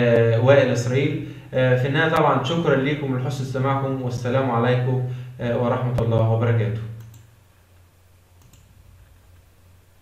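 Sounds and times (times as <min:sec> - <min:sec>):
low electrical hum: 0:00.0 - 0:10.0
computer mouse clicks: 0:07.0 - 0:07.3, 0:08.4 - 0:09.4.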